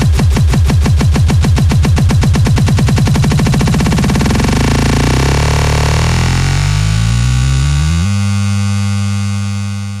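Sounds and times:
techno music: 0.0s - 7.9s.

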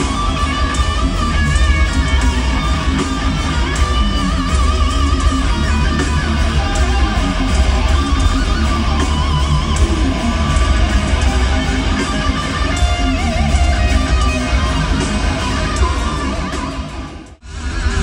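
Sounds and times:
extreme metal band playing live: 0.0s - 18.0s.

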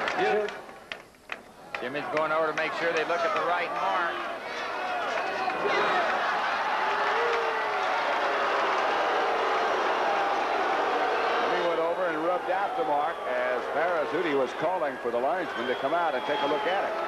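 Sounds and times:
crowd din of voices: 2.0s - 17.0s.

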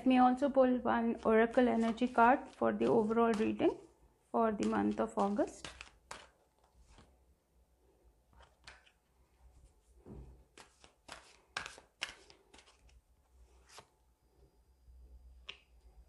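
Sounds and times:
cards being shuffled: 1.1s - 3.9s, 4.5s - 7.2s, 8.3s - 9.0s, 10.4s - 13.9s.

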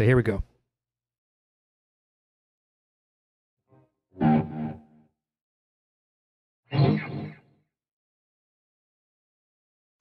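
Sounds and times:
distorted electric guitar chords: 4.2s - 4.9s, 6.7s - 7.4s.

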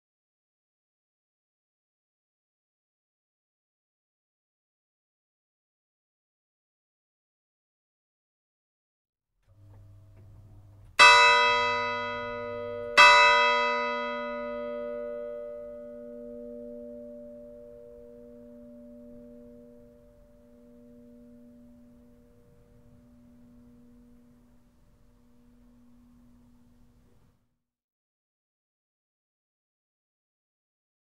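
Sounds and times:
church bell ringing: 9.5s - 27.3s.

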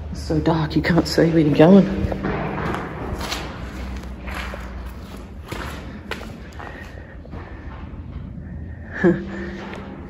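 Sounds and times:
footsteps squelching through mud: 1.0s - 7.0s.

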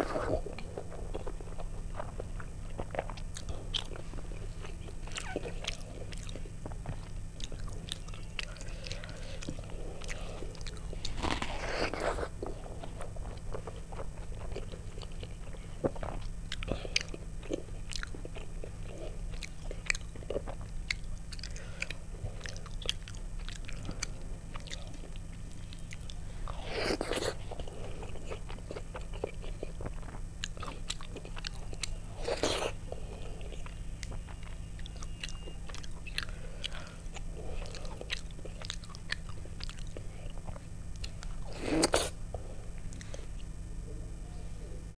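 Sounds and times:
chewing and wet mouth sounds: 0.0s - 44.0s.

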